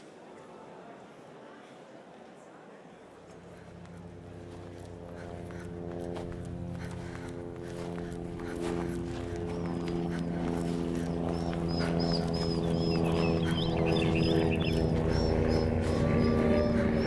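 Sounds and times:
sustained tonal drone: 3.2 - 17.0
fast low fluttering: 3.4 - 17.0
high chirps: 10.8 - 17.0.

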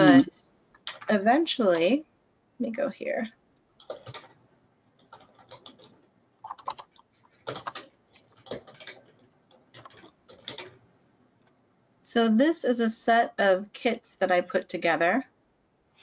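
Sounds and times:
computer keyboard typing: 0.8 - 1.3, 3.8 - 10.8.

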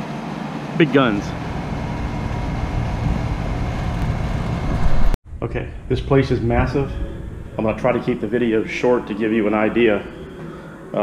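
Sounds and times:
wind buffeting microphone: 1.4 - 10.9.

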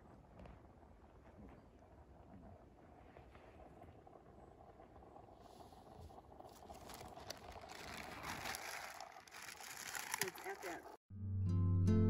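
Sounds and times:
cooking gear rustling and clicking: 6.4 - 11.0.

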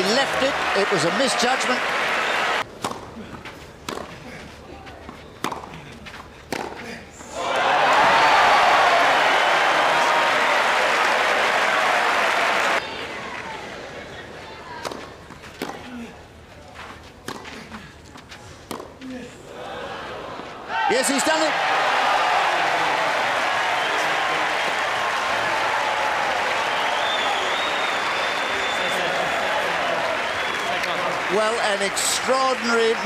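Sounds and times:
crowd applauding and cheering: 0.0 - 2.7, 7.4 - 13.6, 21.0 - 33.0
tennis ball hits: 3.8 - 4.2, 5.4 - 5.7, 6.5 - 6.8, 18.7 - 19.0
low crowd murmur: 12.8 - 20.7.

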